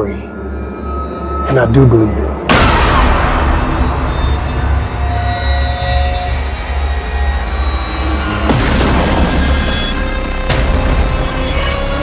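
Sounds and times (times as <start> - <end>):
faint sustained high tones: 0.0 - 8.6.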